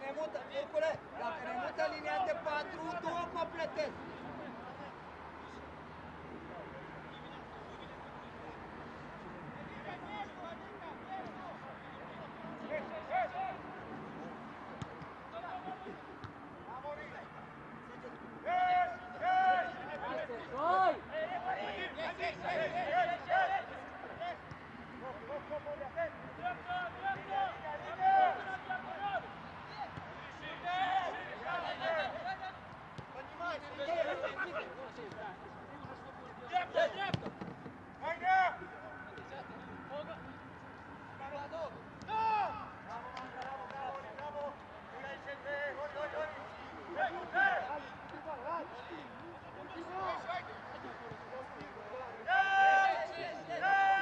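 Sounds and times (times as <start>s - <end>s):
players calling out: 18.0s - 54.0s
ball kicks: 37.1s - 37.8s.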